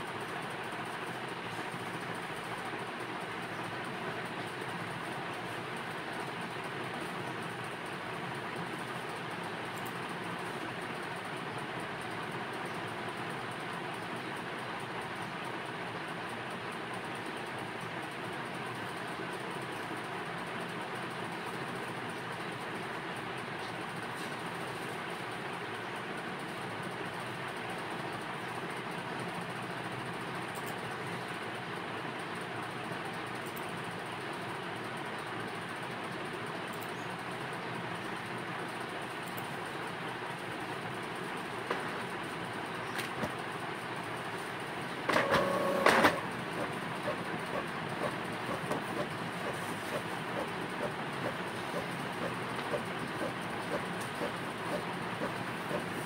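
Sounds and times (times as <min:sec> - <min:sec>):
steady background noise: 0:00.0 - 0:56.0.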